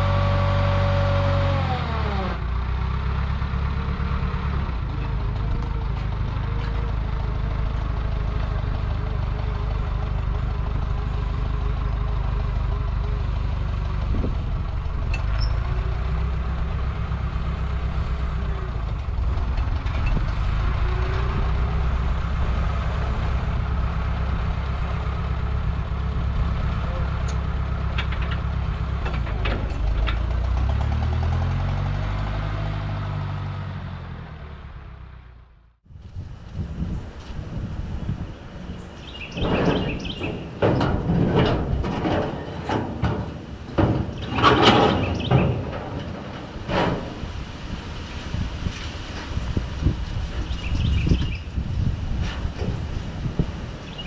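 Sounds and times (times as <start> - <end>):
forklift engine running: 0.0 - 54.0
metal clanks: 26.7 - 31.0, 39.0 - 47.6.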